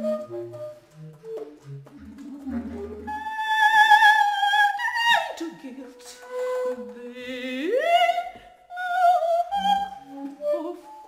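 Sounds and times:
bass flute: 0:00.0 - 0:05.3
bass clarinet: 0:00.0 - 0:05.4, 0:08.8 - 0:11.0
woman singing: 0:02.1 - 0:11.0.

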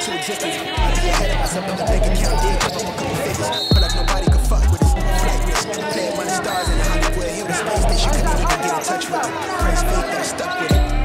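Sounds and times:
hip hop beat: 0:00.0 - 0:11.0
deep sliding bass line: 0:00.8 - 0:02.6, 0:03.8 - 0:05.6, 0:06.7 - 0:07.2, 0:07.8 - 0:08.5.

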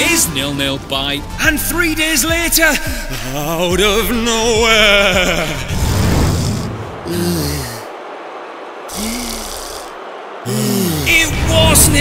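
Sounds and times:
cartoon snoring: 0:08.9 - 0:11.1.

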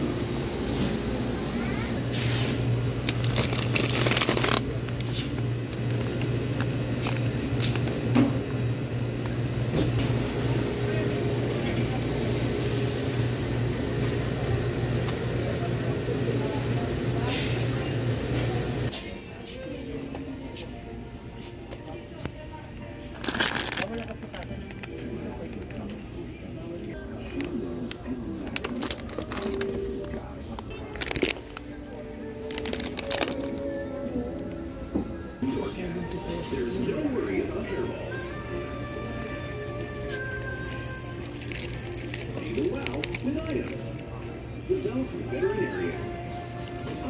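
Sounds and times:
low mechanical hum: 0:00.0 - 0:47.0
murmur of voices: 0:10.1 - 0:47.0
background music: 0:19.0 - 0:47.0.

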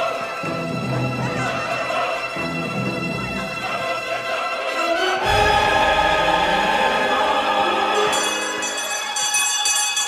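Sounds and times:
small bells jingling: 0:08.1 - 0:10.0.

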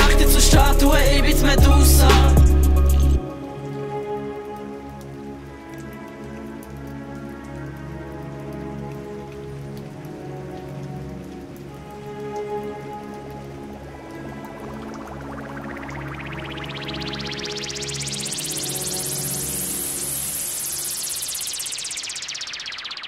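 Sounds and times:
synthesizer drone: 0:00.0 - 0:05.4, 0:12.5 - 0:23.0
patter of falling water: 0:03.2 - 0:23.0
rising whine: 0:14.3 - 0:23.0.

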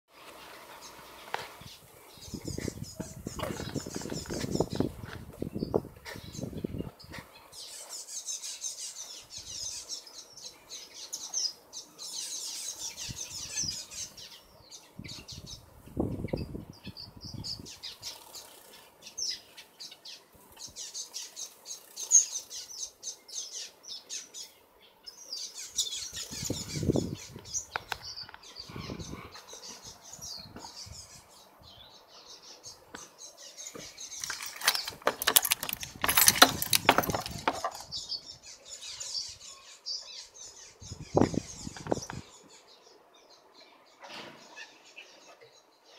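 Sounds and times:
rustling noise: 0:00.1 - 0:07.3, 0:33.8 - 0:38.0
finches chirping: 0:00.7 - 0:43.4.

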